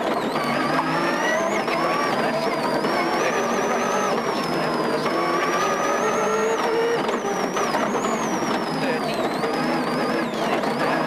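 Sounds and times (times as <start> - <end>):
rally car engine revving: 0.0 - 11.0.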